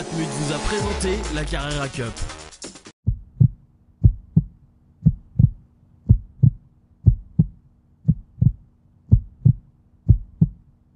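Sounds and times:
heartbeat thumps: 3.0s - 10.7s.

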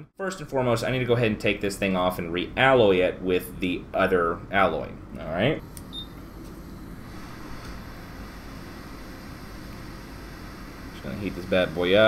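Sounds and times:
hot air station hissing: 5.6s - 12.0s.

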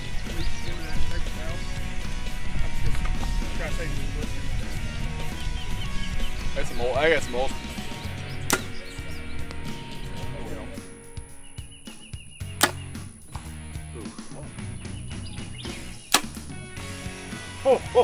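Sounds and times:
background music with steady beat: 0.0s - 18.0s
arrow shot snaps: 8.5s - 8.8s, 12.6s - 13.5s, 15.8s - 16.5s.

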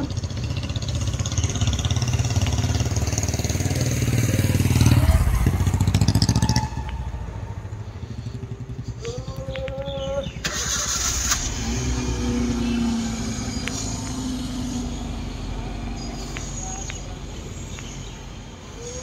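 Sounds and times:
vehicle engine running: 0.0s - 18.8s
rising whine: 11.3s - 16.4s.

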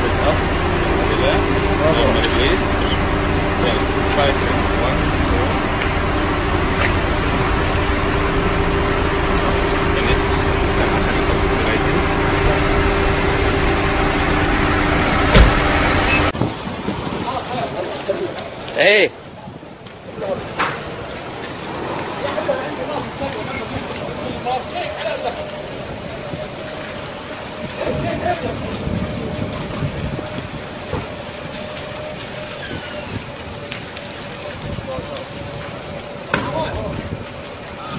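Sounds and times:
car engine idling: 0.0s - 16.4s
fire popping: 0.0s - 16.6s
fire roaring: 0.0s - 37.9s
street traffic noise: 0.0s - 37.9s
sharp knock: 15.3s - 15.6s.

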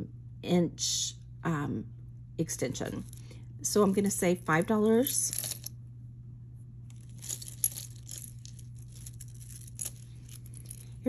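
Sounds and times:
steady low hum: 0.0s - 11.0s
jewelry clicking and clinking: 4.5s - 5.7s, 6.9s - 11.0s.

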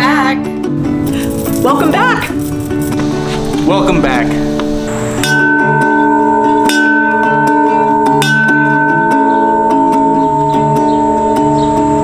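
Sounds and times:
plucked guitar music: 0.0s - 12.0s
school bell ringing: 5.1s - 12.0s.

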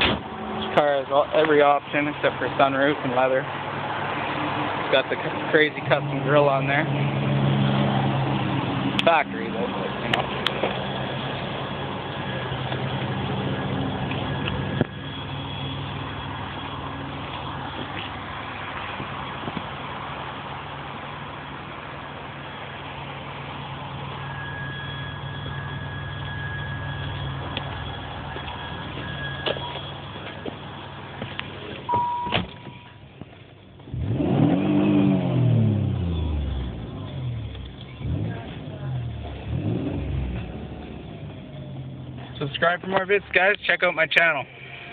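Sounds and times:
sharp thump: 0.0s - 0.3s
car engine idling and revving: 0.0s - 44.4s.

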